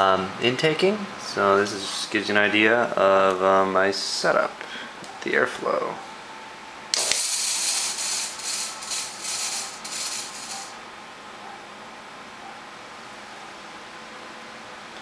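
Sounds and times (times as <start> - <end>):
computer case fans whirring: 0.0 - 15.0
fog machine hissing: 7.0 - 10.8.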